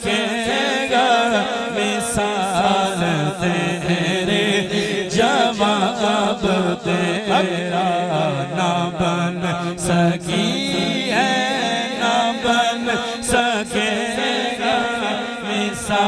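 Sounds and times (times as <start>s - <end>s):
men singing devotional song: 0.0s - 16.0s.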